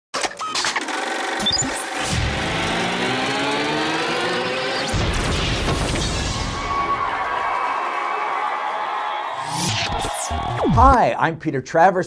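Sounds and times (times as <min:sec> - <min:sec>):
projector motor whine rising: 0:00.9 - 0:05.6.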